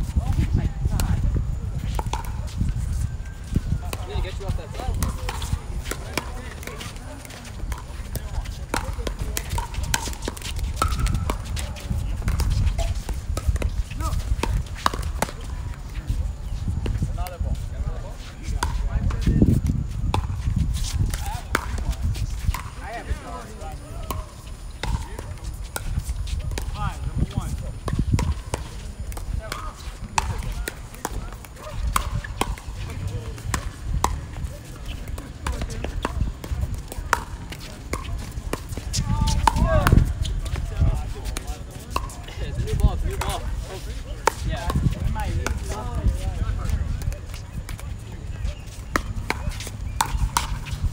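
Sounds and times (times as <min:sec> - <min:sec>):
murmuring voices: 0:00.3 - 0:19.7, 0:21.0 - 0:50.9
paddles hitting plastic ball: 0:03.9 - 0:15.9, 0:18.5 - 0:50.9.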